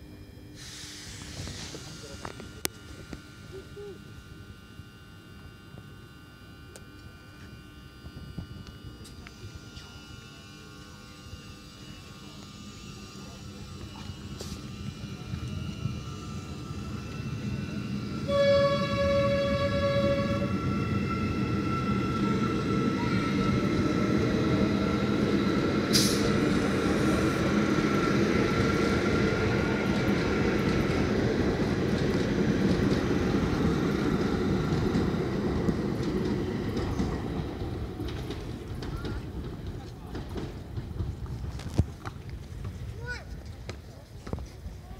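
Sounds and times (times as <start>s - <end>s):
high steady whine: 0.0s - 36.1s
train wheels rumbling on rails: 13.2s - 44.9s
train horn: 18.1s - 23.6s.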